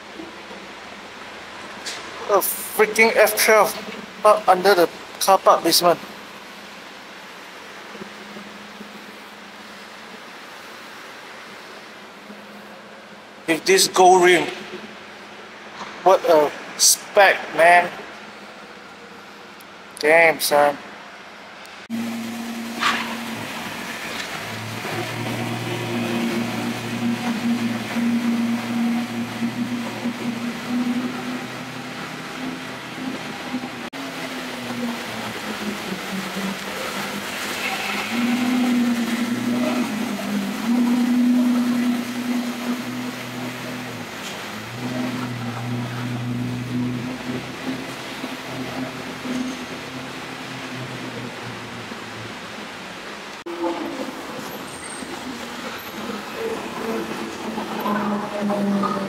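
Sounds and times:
car engine starting and idling: 21.8 - 59.0.

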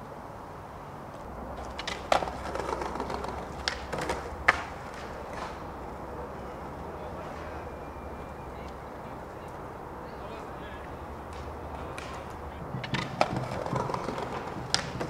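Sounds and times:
low background noise: 0.0 - 15.0
skateboard wheels on concrete: 0.0 - 15.0
skateboard clacks: 1.2 - 6.2, 10.8 - 15.0.

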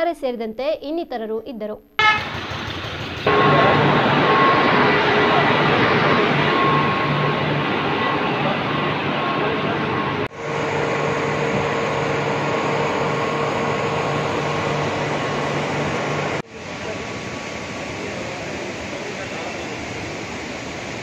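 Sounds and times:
electric pumps whining and humming: 2.0 - 21.0.

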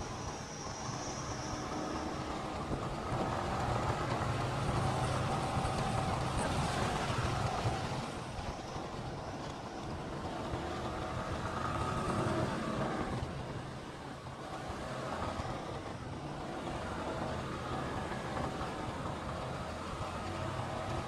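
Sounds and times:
road and wind noise: 0.0 - 21.0.

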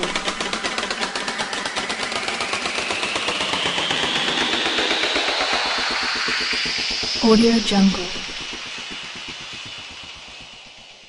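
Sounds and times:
stuttering rising noise sweep: 0.0 - 11.0.

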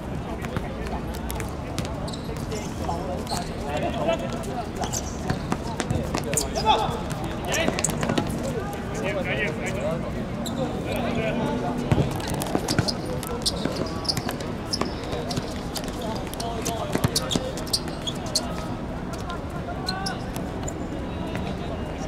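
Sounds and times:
players calling out: 1.7 - 22.0
ball bouncing on hard court: 11.9 - 16.0, 16.6 - 18.0.

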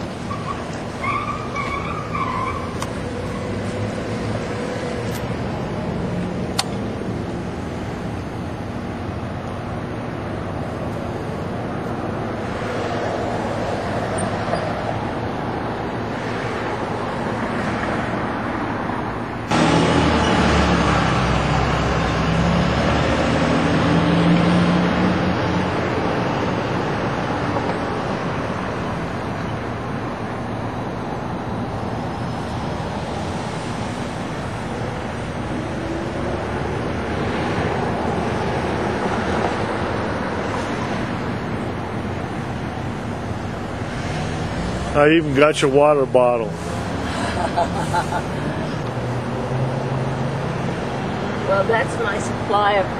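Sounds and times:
heavy vehicle engine running: 0.0 - 52.9
passing cars: 0.0 - 52.9.

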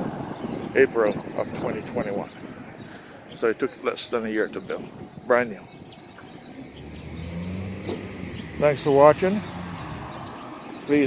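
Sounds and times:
car engine hum: 6.2 - 11.0.

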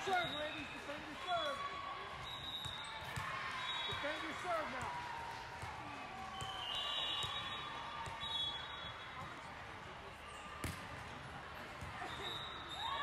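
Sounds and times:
hubbub of voices: 0.0 - 13.0
sneaker squeaks: 2.2 - 4.2, 11.8 - 13.0.

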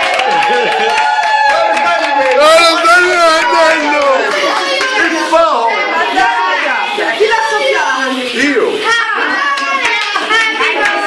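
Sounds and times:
people clapping: 0.0 - 6.6, 9.2 - 11.0
voices cheering: 0.0 - 7.7.

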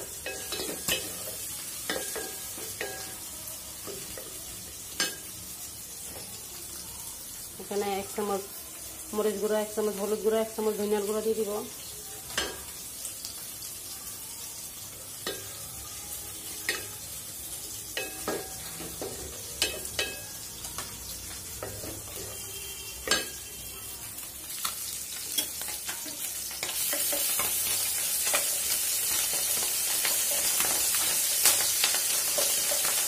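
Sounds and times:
fish frying in hot oil: 0.0 - 33.0
light sizzle: 0.0 - 33.0.

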